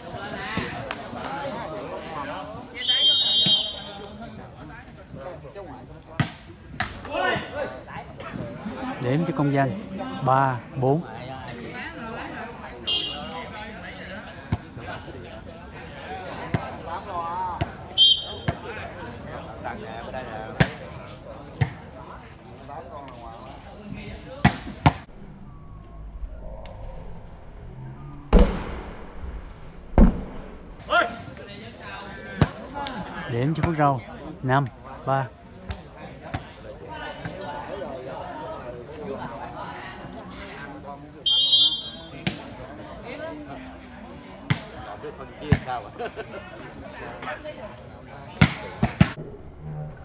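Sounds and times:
spectators' voices: 0.0 - 25.1, 30.8 - 49.2
onlookers chattering: 0.0 - 26.0, 30.8 - 50.0.

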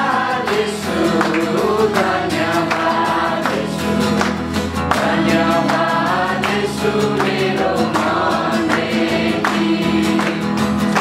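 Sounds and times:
acoustic guitar strumming: 0.0 - 11.0
group singing worship song: 0.0 - 11.0
hands clapping in time: 0.0 - 11.0.

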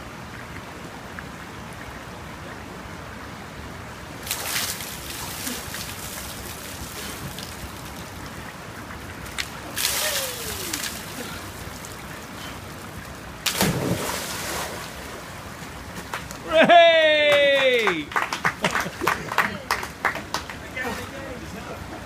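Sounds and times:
river flowing: 0.0 - 22.0
water splashing: 4.1 - 16.5.

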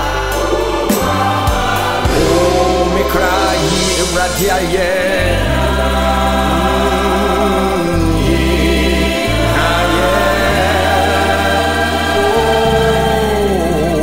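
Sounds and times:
choir singing with vibrato: 0.0 - 14.0
sustained bass notes: 0.0 - 14.0.

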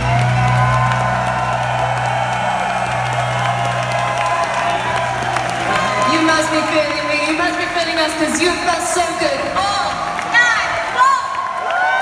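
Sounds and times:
crowd cheering and whooping: 0.0 - 8.7, 9.4 - 12.0.

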